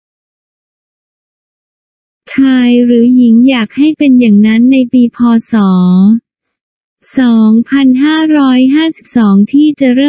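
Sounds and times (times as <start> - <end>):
person speaking: 2.3 - 6.2, 7.0 - 10.0.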